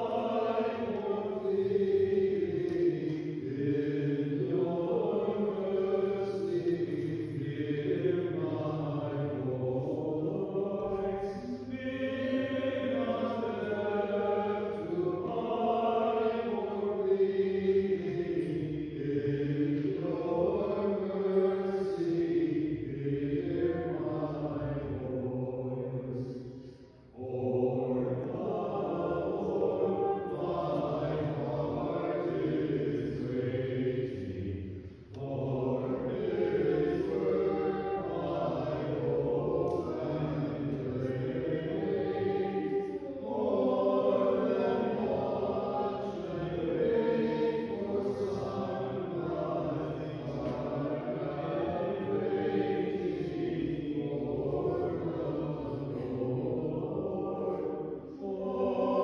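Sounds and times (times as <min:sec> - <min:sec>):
group chanting slowly: 0:00.0 - 0:59.0.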